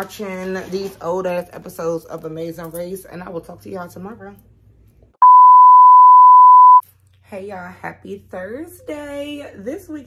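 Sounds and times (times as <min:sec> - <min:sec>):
pure-tone bleep: 0:05.2 - 0:06.8.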